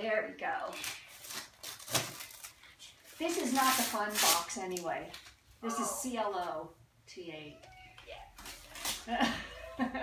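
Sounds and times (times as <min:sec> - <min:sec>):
wrapping paper tearing and crinkling: 0:00.7 - 0:05.3, 0:08.4 - 0:09.1.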